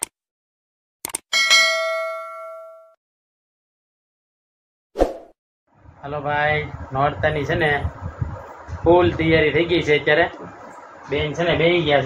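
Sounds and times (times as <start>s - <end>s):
bell-like notification ding: 1.4s - 3.0s.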